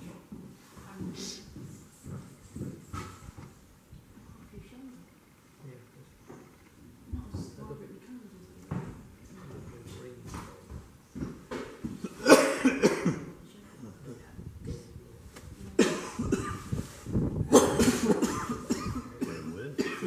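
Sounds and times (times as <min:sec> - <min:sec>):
person coughing: 0:12.1 - 0:13.3, 0:15.8 - 0:16.7, 0:17.5 - 0:20.0.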